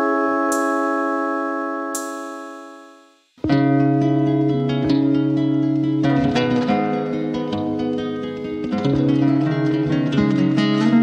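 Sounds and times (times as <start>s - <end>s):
held instrumental chord: 0.0s - 7.4s
classical guitars plucking: 3.4s - 11.0s.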